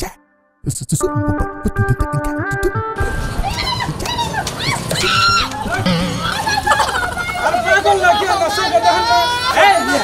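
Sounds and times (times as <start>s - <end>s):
street background noise: 2.4s - 10.0s.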